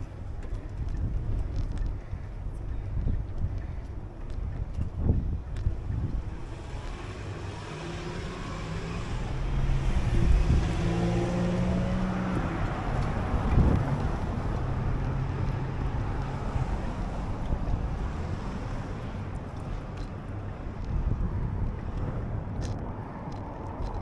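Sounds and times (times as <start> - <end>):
wind noise on microphone: 0.0 - 24.0
van engine driving past: 6.6 - 17.3.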